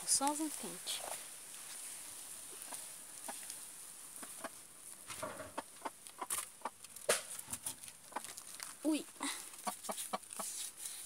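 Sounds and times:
hens clucking: 2.2s - 8.5s, 9.2s - 10.6s
clicks and rustles: 4.2s - 10.9s.

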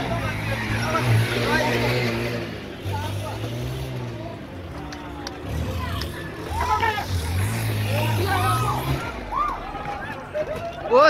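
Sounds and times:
people shouting: 7.9s - 11.0s.

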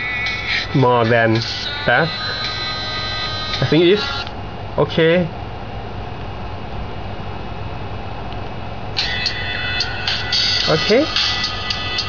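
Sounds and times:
music from small phone speaker: 0.0s - 4.3s, 9.0s - 12.0s.

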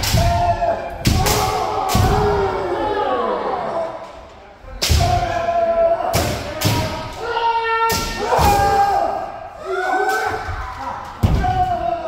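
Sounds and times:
people shouting: 0.0s - 4.2s, 4.8s - 12.0s.

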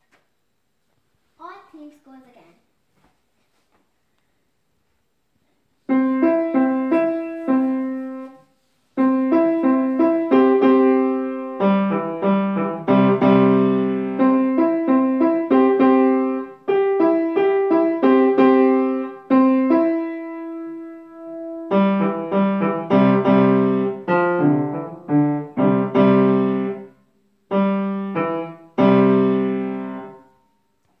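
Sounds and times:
child playing piano: 5.9s - 8.4s, 9.0s - 30.4s.

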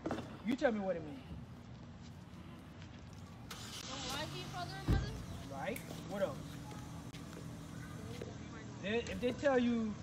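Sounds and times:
faint engine hum: 1.2s - 10.0s.

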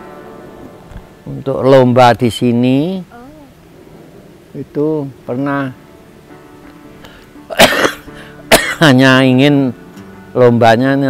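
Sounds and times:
man coughing harshly: 7.5s - 8.9s.

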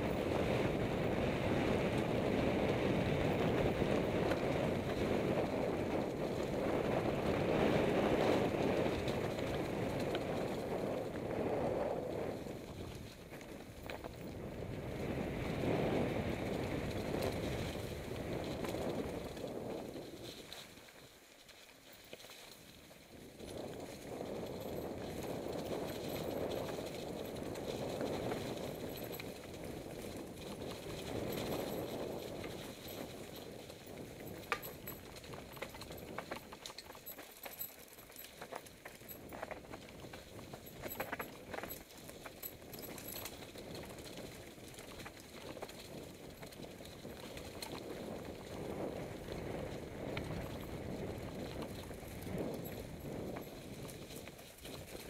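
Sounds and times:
bike tyres rolling through leaves: 0.0s - 55.0s
bike clicks and knocks: 12.7s - 14.4s, 30.1s - 49.4s.

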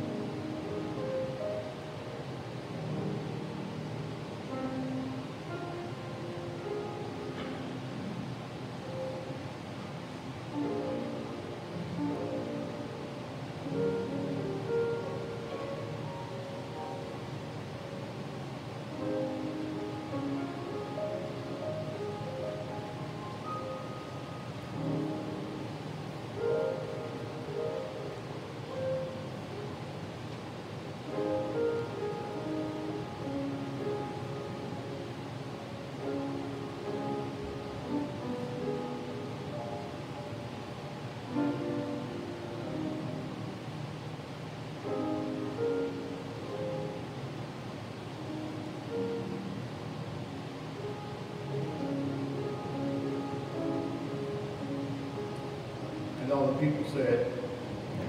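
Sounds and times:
slow soft keyboard music: 0.0s - 58.0s.

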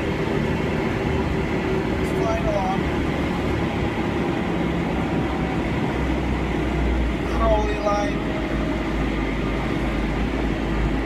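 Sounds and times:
backhoe engine running: 0.0s - 11.0s.

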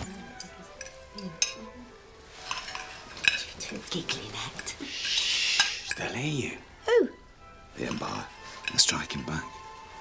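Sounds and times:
cutlery and crockery clinking: 0.0s - 6.6s, 7.8s - 9.7s.

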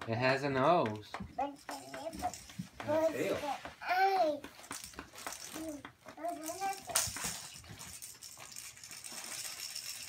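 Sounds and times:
wrapping paper crinkling: 4.8s - 10.0s.

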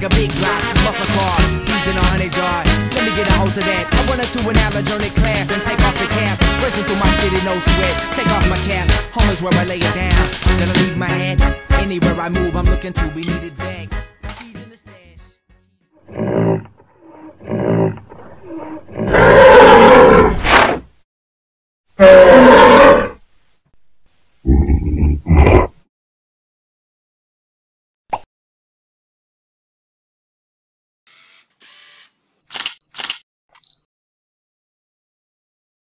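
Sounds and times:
camera shutter clicks: 14.3s - 14.5s, 31.1s - 33.7s
animal growls: 16.0s - 20.8s, 24.5s - 25.8s
animal roar: 16.0s - 20.8s, 22.0s - 23.2s, 24.5s - 25.8s
small click: 32.5s - 33.9s.

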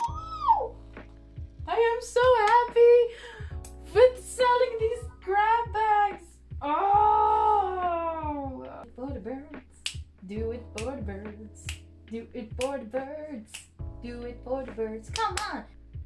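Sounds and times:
woman squealing and whimpering: 0.0s - 0.8s
soft background music: 0.0s - 16.0s.

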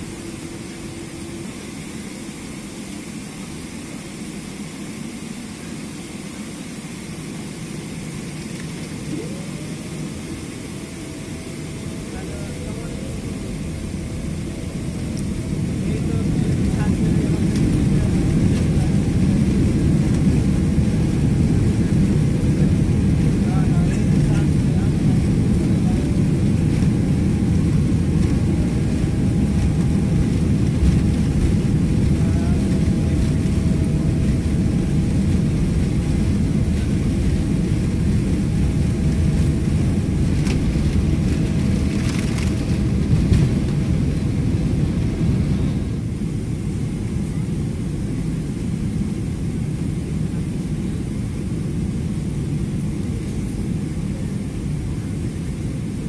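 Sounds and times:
faint jet engine whine: 0.0s - 56.0s
jet engine deep rumble: 0.0s - 56.0s.

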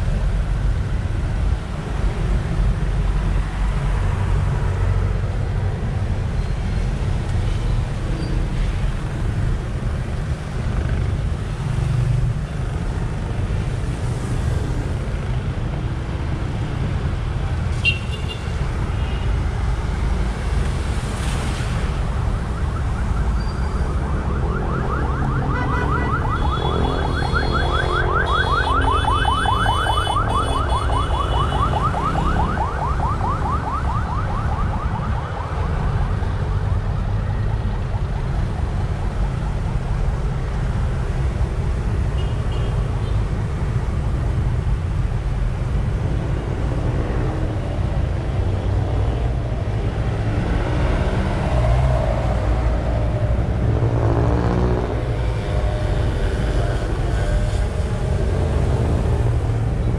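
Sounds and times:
traffic on wet road: 0.0s - 59.9s
electronic siren warbling: 22.4s - 35.2s.

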